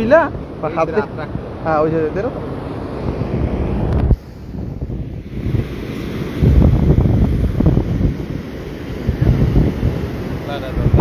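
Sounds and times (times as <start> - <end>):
surf breaking on beach: 0.0 - 11.0
wind buffeting microphone: 0.0 - 11.0.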